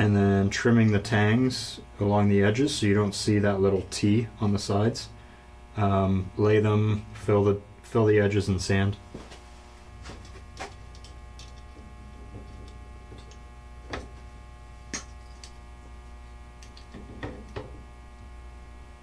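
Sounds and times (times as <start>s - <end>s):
steady electrical hum: 0.0s - 19.0s
wire cutters snipping: 14.9s - 15.6s.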